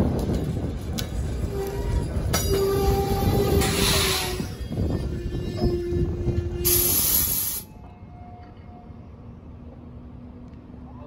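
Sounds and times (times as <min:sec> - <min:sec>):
train wheels rumbling on rail: 0:00.0 - 0:10.8.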